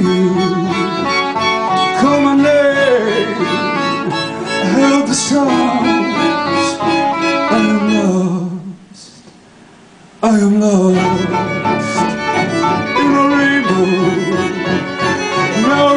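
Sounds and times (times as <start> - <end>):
cello: 0.0 - 8.4, 10.9 - 15.9
violins: 0.0 - 8.4, 10.9 - 15.9.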